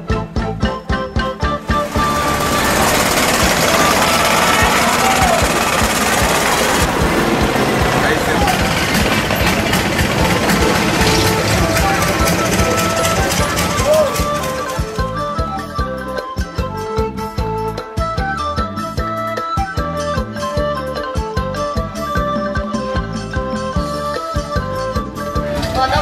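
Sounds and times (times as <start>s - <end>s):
music: 0.0s - 26.0s
boat engine knocking: 1.7s - 15.2s
people talking: 2.1s - 14.9s, 25.6s - 26.0s.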